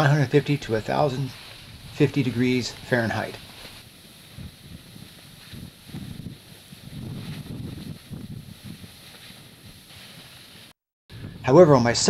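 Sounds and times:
faint hiss: 0.0s - 10.8s
lava rumbling and sloshing: 2.7s - 10.5s.

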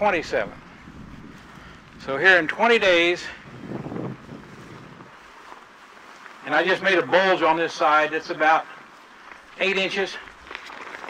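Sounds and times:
wind on microphone: 0.0s - 6.1s.

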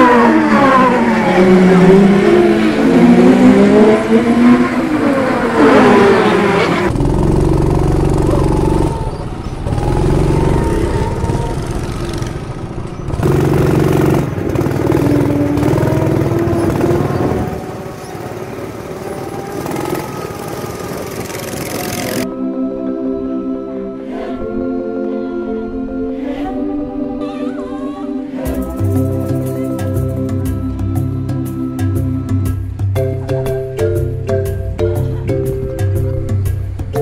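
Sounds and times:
go-kart engine revving: 0.0s - 22.3s
go-kart engines running: 0.0s - 22.3s
music: 22.3s - 37.0s.

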